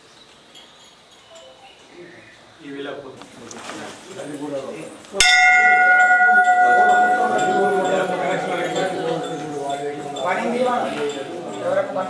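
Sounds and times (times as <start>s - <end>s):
murmur of voices: 1.8s - 12.0s
temple bell ringing: 5.2s - 12.0s.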